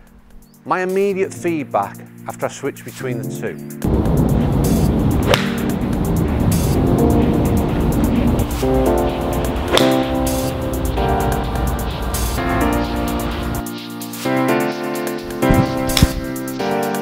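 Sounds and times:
music with steady beat: 0:03.8 - 0:17.0
golf club striking ball: 0:05.2 - 0:05.8, 0:09.7 - 0:10.5, 0:15.4 - 0:16.3.

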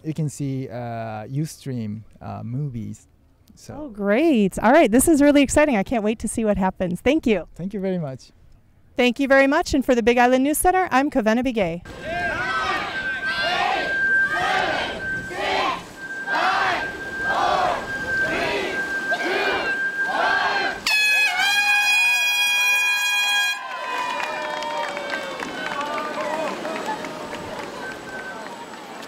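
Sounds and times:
cheering and mixed voices: 0:11.9 - 0:21.5, 0:23.6 - 0:29.0
crowd calling out in unison: 0:11.9 - 0:21.6
loud air horn: 0:11.9 - 0:23.9.

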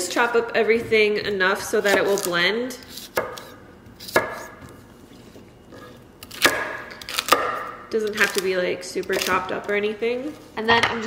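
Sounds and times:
knife chopping on wooden board: 0:00.6 - 0:04.8, 0:05.7 - 0:08.4.

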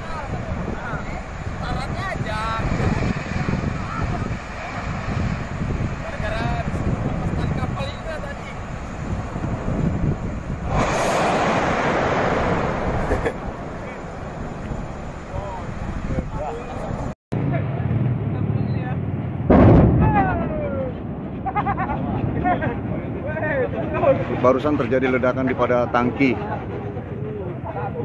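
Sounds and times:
loud explosion blast: 0:00.0 - 0:16.3, 0:19.2 - 0:24.4
rushing noise: 0:00.0 - 0:27.0
outdoor noise: 0:00.0 - 0:28.0
people's voices: 0:19.9 - 0:28.0.

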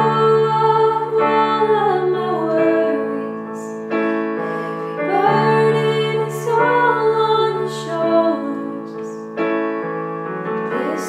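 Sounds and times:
women singing worship song: 0:00.0 - 0:09.2, 0:10.7 - 0:11.0
digital piano chords: 0:00.0 - 0:11.0.

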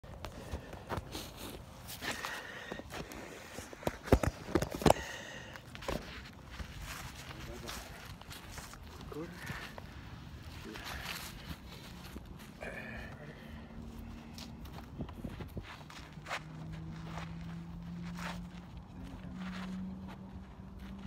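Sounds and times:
gloves rustling and fumbling: 0:00.0 - 0:21.0.

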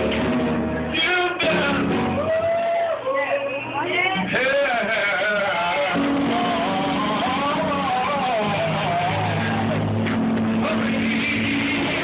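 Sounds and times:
man singing gospel melody: 0:00.9 - 0:03.0, 0:04.2 - 0:09.9, 0:10.6 - 0:12.0.

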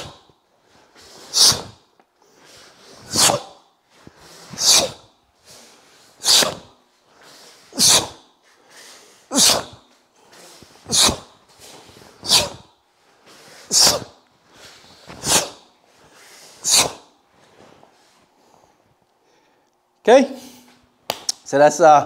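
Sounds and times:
sharp hissing exhalations: 0:00.9 - 0:17.1.

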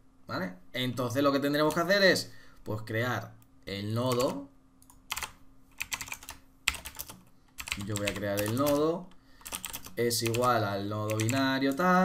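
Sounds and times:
computer keyboard typing: 0:04.1 - 0:11.9.

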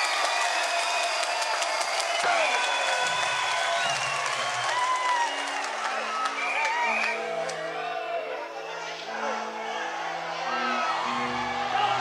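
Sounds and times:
audience clapping and cheering: 0:00.0 - 0:08.3.

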